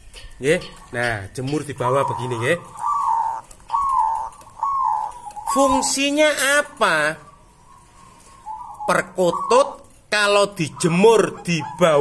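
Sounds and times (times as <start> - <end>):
dove cooing: 0.6 - 12.0.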